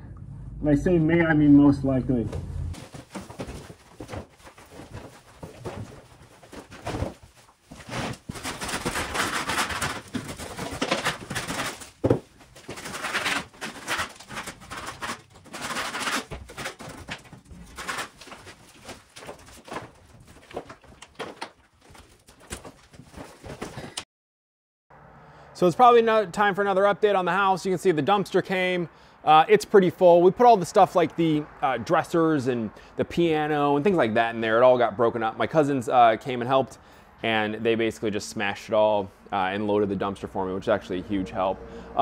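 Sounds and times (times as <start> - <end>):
plaster scraped off wall: 2.8 - 21.4.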